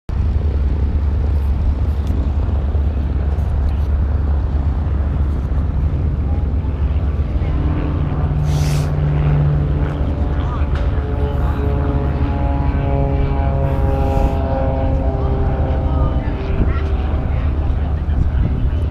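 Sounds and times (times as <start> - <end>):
steady engine hum: 0.1 - 18.9
wind buffeting microphone: 0.1 - 18.9.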